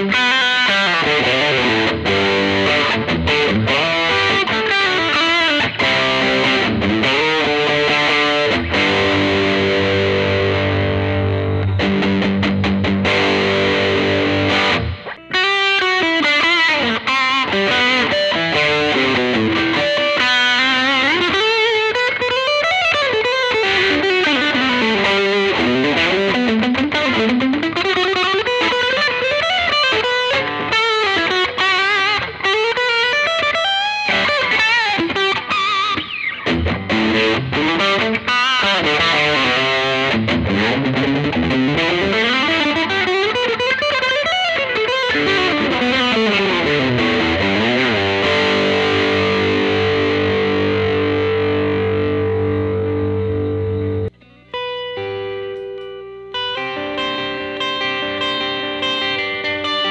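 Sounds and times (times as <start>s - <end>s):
electric guitar lead runs: 0.0s - 59.9s.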